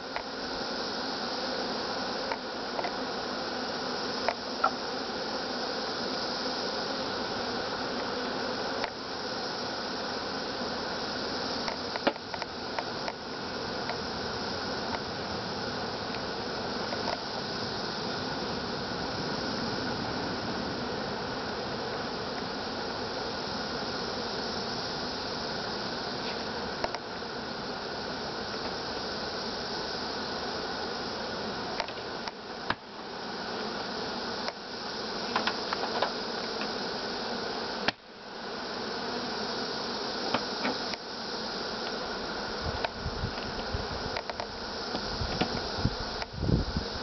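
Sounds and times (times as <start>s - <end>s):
honeybees buzzing: 0.0s - 47.0s.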